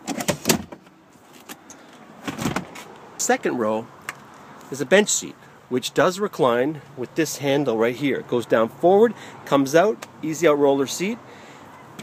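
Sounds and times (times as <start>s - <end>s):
seat latch clicks and clatter: 0.0s - 2.9s.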